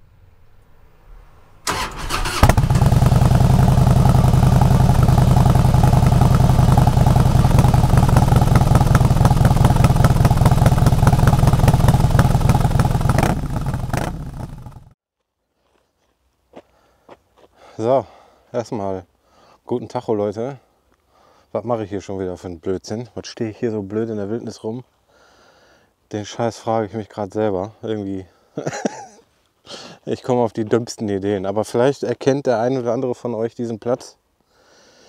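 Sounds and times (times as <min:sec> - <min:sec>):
motorcycle engine running: 0:01.7 - 0:15.0.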